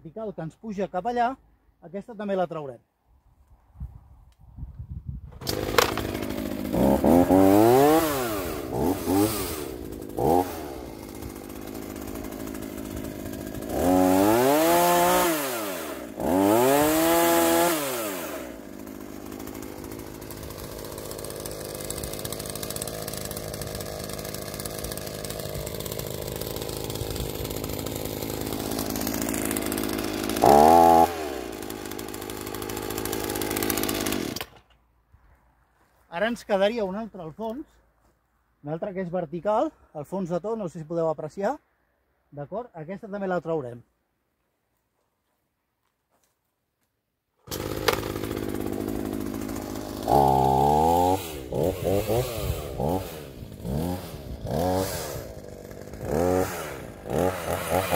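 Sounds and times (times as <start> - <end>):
chainsaw revving and cutting: 5.4 - 34.6, 47.4 - 57.9.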